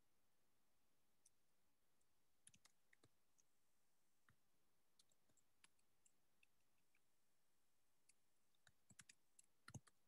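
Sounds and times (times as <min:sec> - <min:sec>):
faint keyboard keystrokes: 0:08.0 - 0:10.0.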